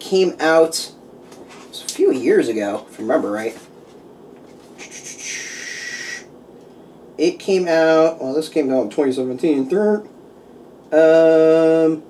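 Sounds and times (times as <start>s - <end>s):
person speaking: 1.6s - 3.8s
hissing intake of breath: 4.8s - 6.3s.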